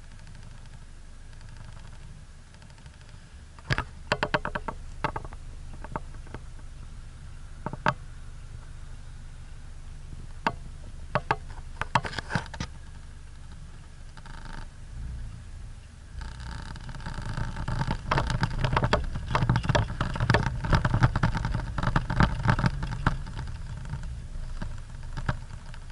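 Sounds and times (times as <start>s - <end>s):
engine and road rumble: 0.0s - 25.9s
vehicle body knocks and rattles: 3.6s - 6.6s, 16.2s - 25.9s.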